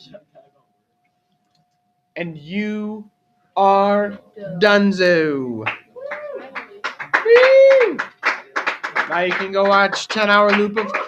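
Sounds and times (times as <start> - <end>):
hand claps: 5.6 - 11.0.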